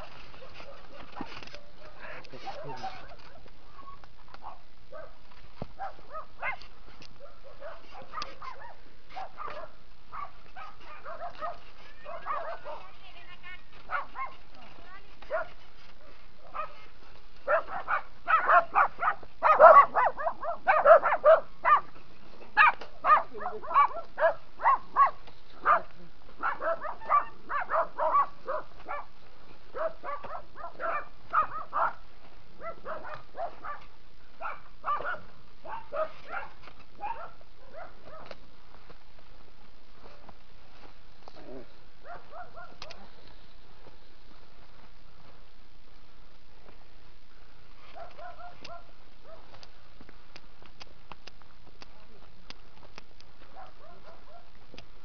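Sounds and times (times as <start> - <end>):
background noise: 0.0 - 55.0
dog barking: 0.3 - 3.1, 4.4 - 5.2, 5.8 - 12.9, 13.9 - 14.4, 15.3 - 21.9, 22.6 - 29.1, 29.7 - 32.0, 32.6 - 38.4, 42.0 - 43.2, 47.9 - 49.6, 53.5 - 54.5.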